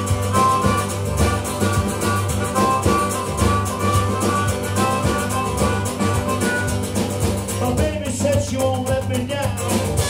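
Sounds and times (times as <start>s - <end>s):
harmonica: 0.0s - 7.8s
acoustic guitar: 0.0s - 10.0s
drum kit: 0.0s - 10.0s
electric bass: 0.0s - 10.0s.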